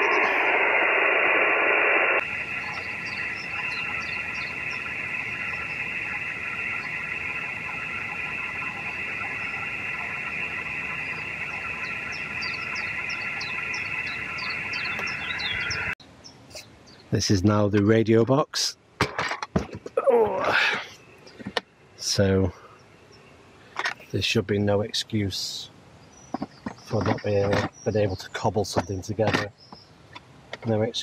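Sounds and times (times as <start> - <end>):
radio receiver hiss: 0.0 - 16.0
faint steady radio tones: 0.0 - 22.9, 23.7 - 25.7, 26.3 - 29.5.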